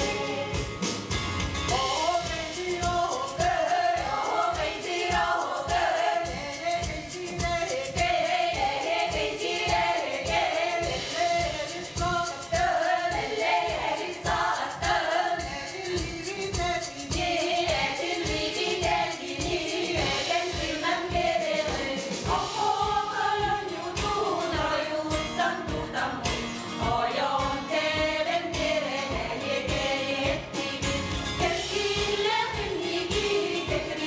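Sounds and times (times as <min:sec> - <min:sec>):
women singing together: 0:00.0 - 0:00.9, 0:01.7 - 0:34.0.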